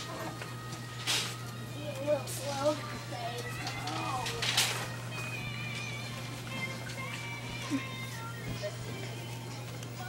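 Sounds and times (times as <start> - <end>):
faint voices: 1.6 - 10.0.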